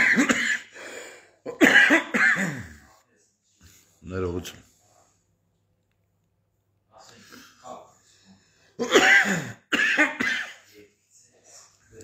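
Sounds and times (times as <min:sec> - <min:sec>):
man coughing: 0:00.0 - 0:00.7, 0:01.5 - 0:02.8, 0:08.8 - 0:10.6.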